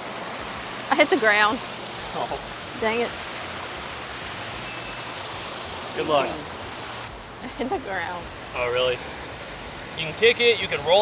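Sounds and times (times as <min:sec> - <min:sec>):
water rushing from waterfall: 0:00.0 - 0:11.0.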